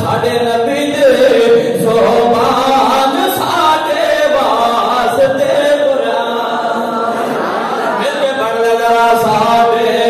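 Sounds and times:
man chanting into microphone: 0:00.0 - 0:07.2, 0:08.0 - 0:10.0.

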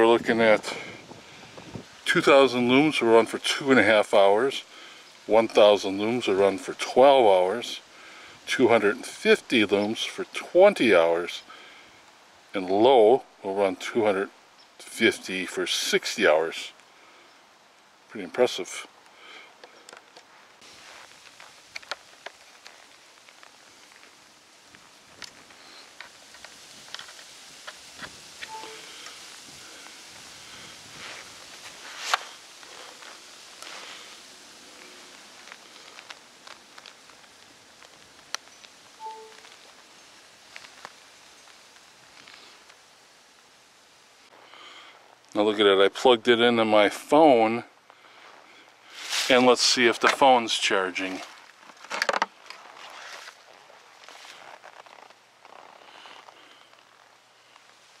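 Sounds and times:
faint outdoor background: 0:00.0 - 0:58.0
jacket rustle: 0:20.0 - 0:42.7, 0:48.3 - 0:58.0.

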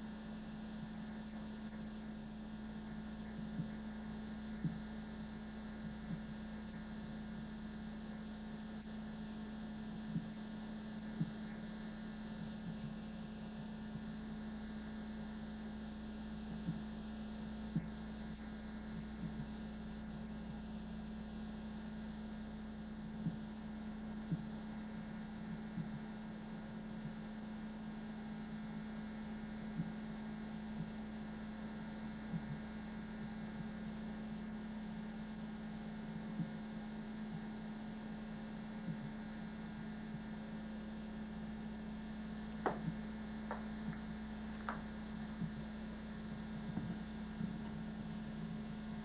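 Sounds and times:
electrical hum: 0:00.0 - 0:49.0.

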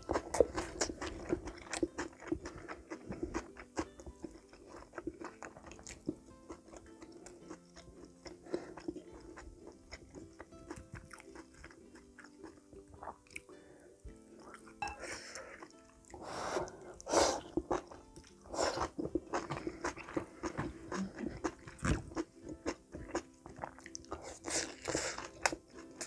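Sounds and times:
chewing with wet mouth clicks: 0:00.0 - 0:13.5, 0:17.4 - 0:26.0.

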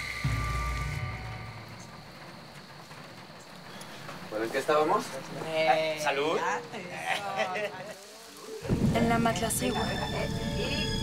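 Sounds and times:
thunder clap and rumble: 0:08.6 - 0:11.0.

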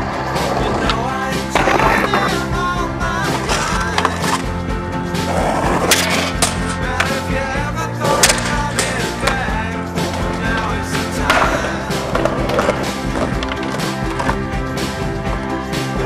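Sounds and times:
music soundtrack: 0:00.0 - 0:16.0
skateboard popping and landing: 0:05.4 - 0:07.2, 0:08.1 - 0:09.5, 0:10.1 - 0:14.4.

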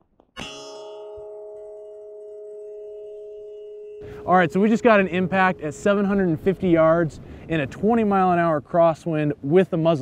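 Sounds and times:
steel plate ringing: 0:00.4 - 0:07.2.

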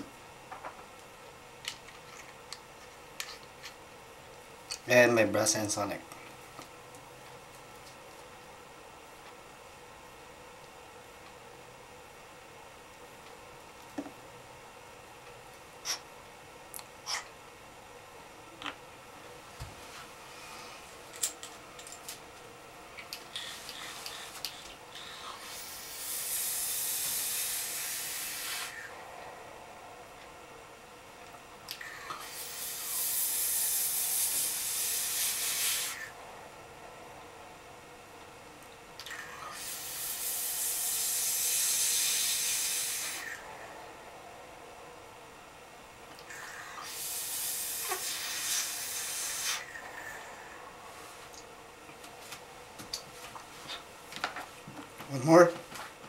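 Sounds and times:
hiss of air and vapour: 0:19.6 - 0:21.4, 0:23.1 - 0:51.6.

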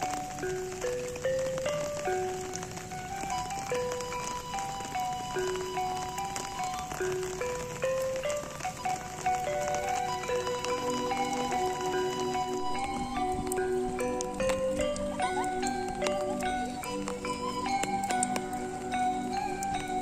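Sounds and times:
gamelan music: 0:00.0 - 0:20.0
rain pattering: 0:00.0 - 0:20.0.

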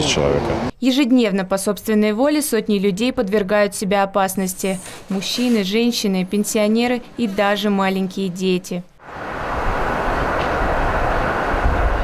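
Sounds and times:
train passing: 0:09.0 - 0:12.0.

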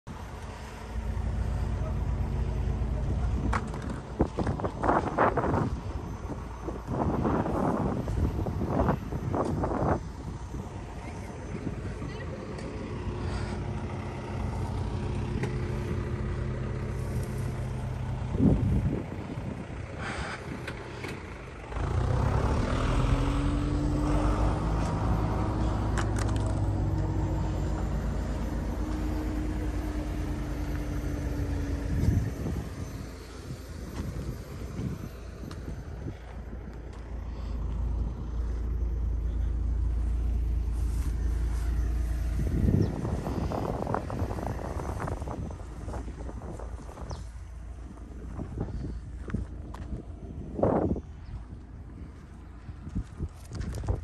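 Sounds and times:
rising whine: 0:00.1 - 0:54.0
truck engine running: 0:00.1 - 0:54.0
people talking: 0:10.9 - 0:12.9.

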